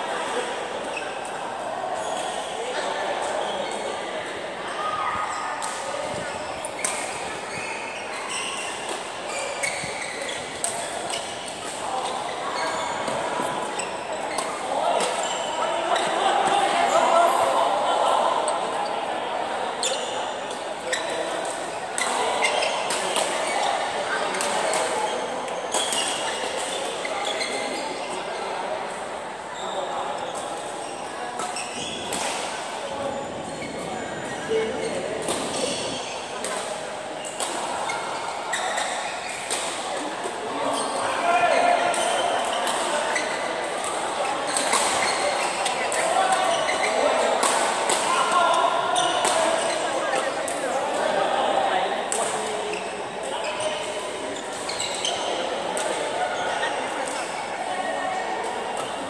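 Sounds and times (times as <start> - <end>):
indistinct chatter: 0.0 - 59.0.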